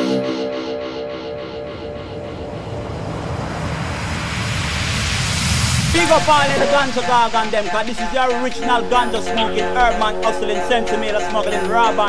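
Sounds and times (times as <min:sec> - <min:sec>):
low rumble: 0:01.3 - 0:09.2
rushing riser whoosh: 0:01.3 - 0:09.2.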